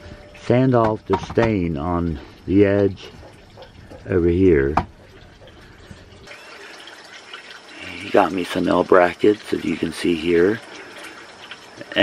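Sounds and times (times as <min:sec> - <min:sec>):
speech: 0:00.4 - 0:03.2, 0:04.1 - 0:04.8, 0:07.8 - 0:10.6, 0:11.8 - 0:12.0.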